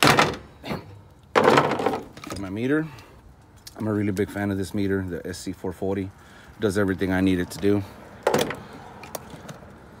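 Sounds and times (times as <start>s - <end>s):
tool being set down: 0.0s - 0.5s, 1.4s - 2.4s.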